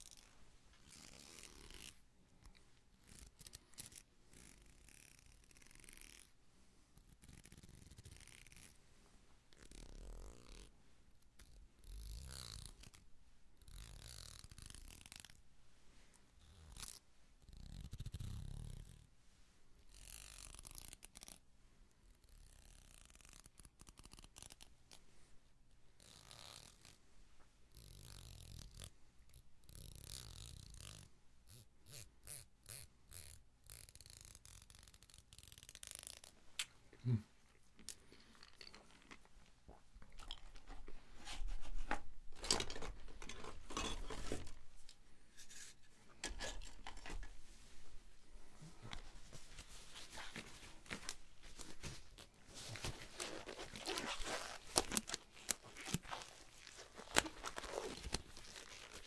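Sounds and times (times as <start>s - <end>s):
plastic comb scratching: 7.2s - 8.8s, 31.9s - 36.4s.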